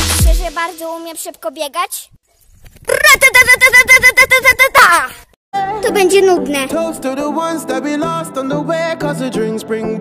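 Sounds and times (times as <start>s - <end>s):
high voice repeating short pulses: 2.9s - 6.8s.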